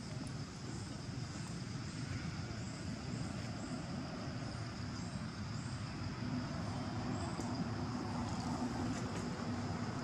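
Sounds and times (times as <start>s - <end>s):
distant traffic rumble: 0.0s - 10.0s
faint high whine: 0.0s - 10.0s.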